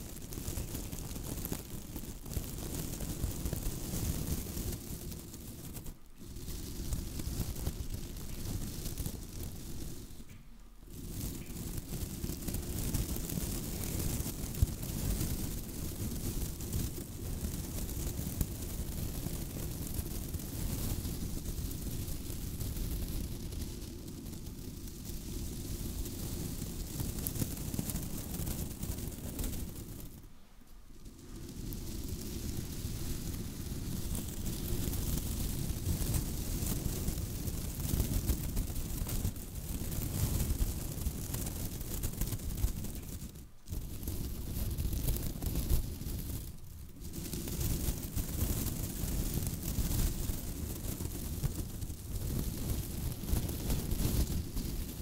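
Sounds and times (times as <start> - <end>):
tinsel crackling on microphone: 0.0 - 50.2.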